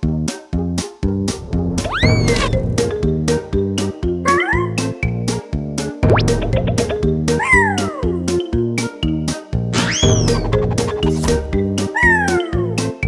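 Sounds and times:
upbeat cartoon music: 0.0 - 13.0
squeaky cartoon cries: 1.9 - 2.5, 4.3 - 4.9, 7.4 - 8.1, 11.9 - 12.7.

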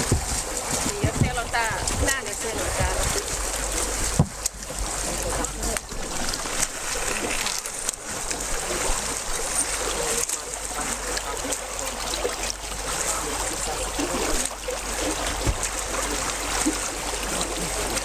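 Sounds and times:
icy water sloshing and churning: 0.0 - 18.0.

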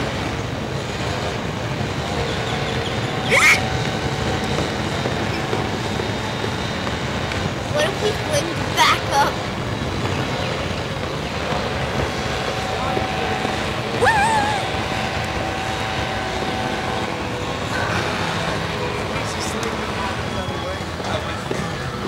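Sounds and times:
steady rushing noise: 0.0 - 22.0
wavering voice: 14.0 - 15.0.

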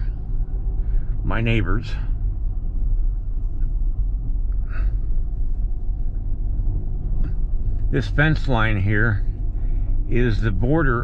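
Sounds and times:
van engine and road rumble: 0.0 - 11.0.

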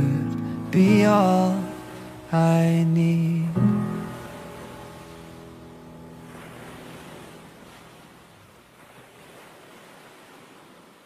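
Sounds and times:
ocean surf: 0.0 - 11.0.

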